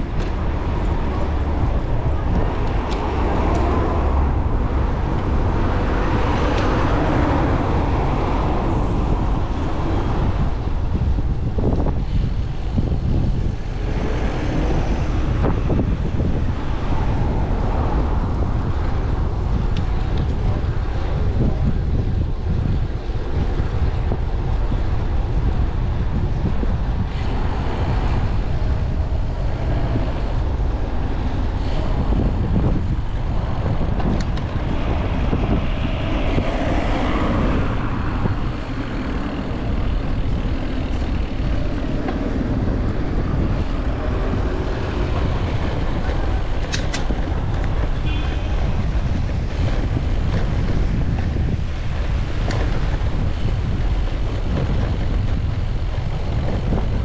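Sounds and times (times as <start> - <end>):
city traffic: 0.0 - 57.0
wind rushing over microphone: 0.0 - 57.0.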